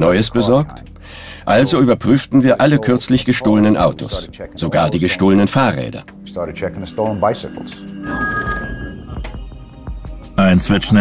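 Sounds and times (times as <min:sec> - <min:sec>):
telephone ringing: 0:07.5 - 0:09.4.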